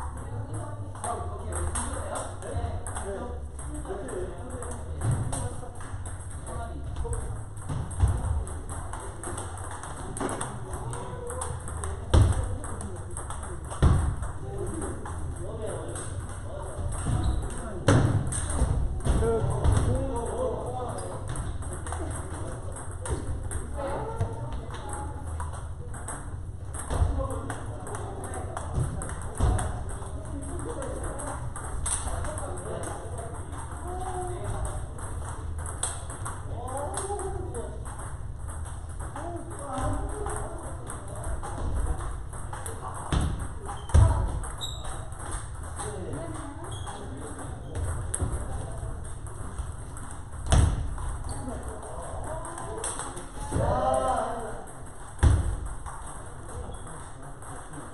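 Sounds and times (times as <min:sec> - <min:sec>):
murmur of people talking: 0:00.0 - 0:57.9
table tennis balls clicking: 0:00.0 - 0:57.9.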